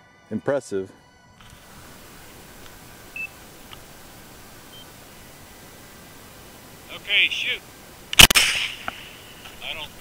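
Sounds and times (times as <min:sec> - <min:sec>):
steady hiss: 0:01.4 - 0:10.0
faint clicks: 0:02.6 - 0:04.0, 0:08.1 - 0:09.6
high electronic beeps: 0:03.1 - 0:03.4.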